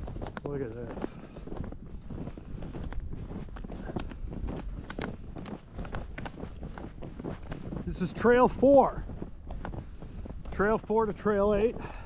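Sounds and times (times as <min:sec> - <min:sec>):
snowshoe footsteps in snow: 0:00.0 - 0:12.0
wind rumbling on microphone: 0:00.0 - 0:12.0.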